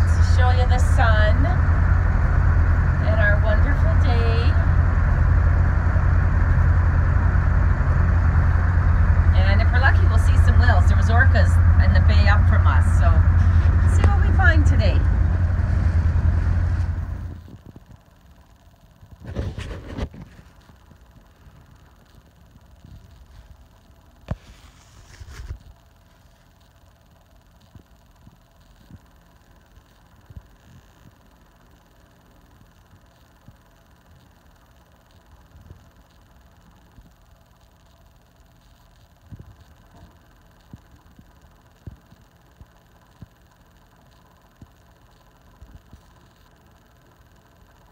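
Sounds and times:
motorboat engine rumble: 0:00.0 - 0:18.2.

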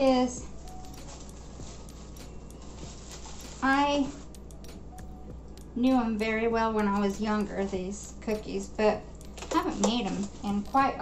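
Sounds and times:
low hum with soft hiss: 0:00.0 - 0:11.0.

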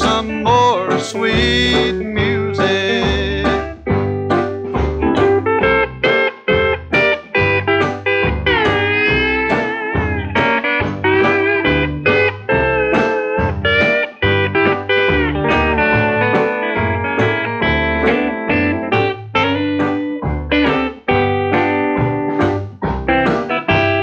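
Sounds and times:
plucked sliding string notes: 0:00.0 - 0:24.0
rhythm and bass beat: 0:00.0 - 0:24.0.

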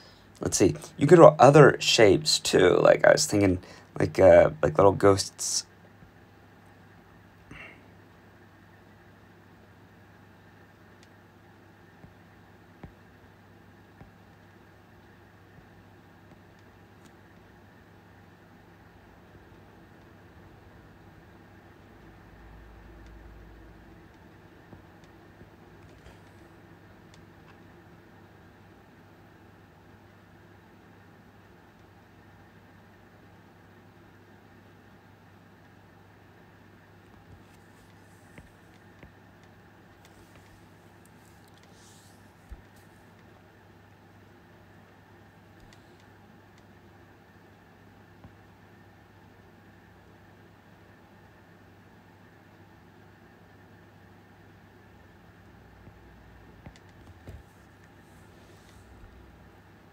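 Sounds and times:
faint room tone hum: 0:00.0 - 0:59.9.

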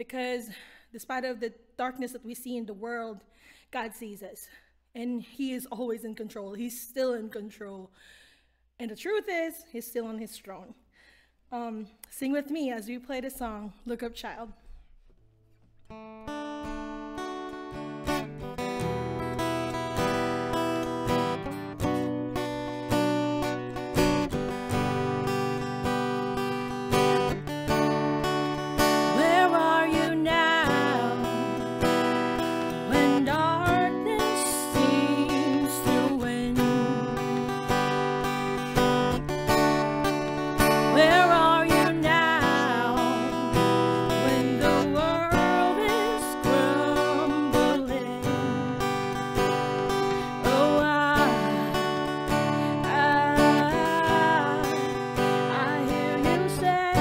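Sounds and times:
strummed acoustic guitar: 0:14.8 - 0:57.0
woman singing: 0:28.7 - 0:57.0.

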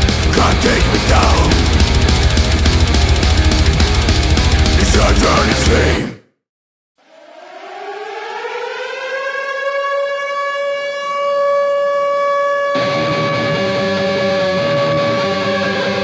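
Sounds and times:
metal band playing: 0:00.0 - 0:06.1.

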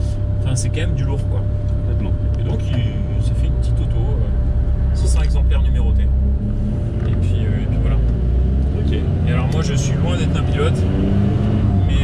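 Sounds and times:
car engine drone: 0:00.0 - 0:12.0.

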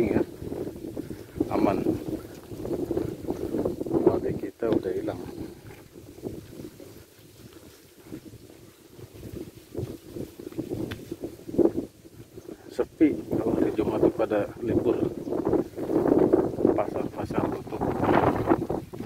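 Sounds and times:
wind buffeting microphone: 0:00.0 - 0:19.0.

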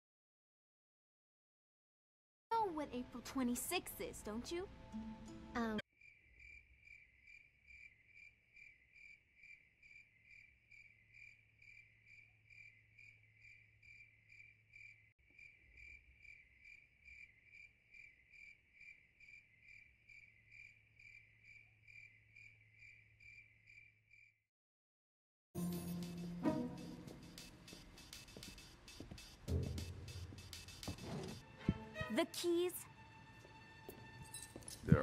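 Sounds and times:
crickets chirping: 0:06.0 - 0:24.4.

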